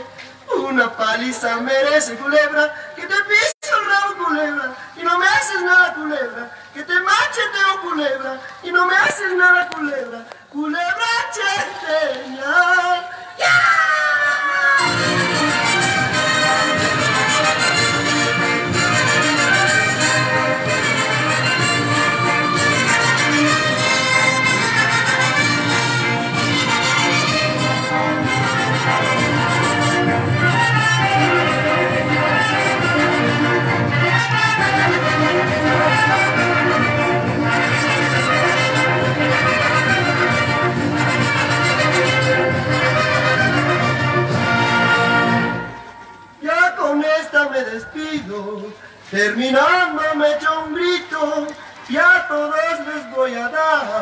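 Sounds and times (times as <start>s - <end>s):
dance music with brass and fiddle: 14.8s - 45.9s
singing: 26.6s - 40.6s.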